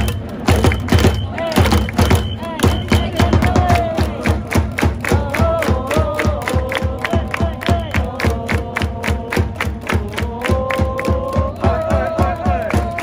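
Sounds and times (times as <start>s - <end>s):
crowd chanting: 0.0s - 13.0s
crowd clapping: 0.0s - 13.0s
quick steady drumbeat: 0.0s - 13.0s.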